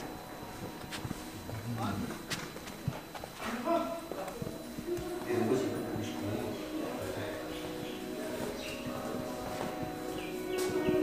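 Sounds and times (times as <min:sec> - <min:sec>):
footsteps on a hard floor: 0:00.0 - 0:11.0
quiet talking: 0:03.0 - 0:11.0.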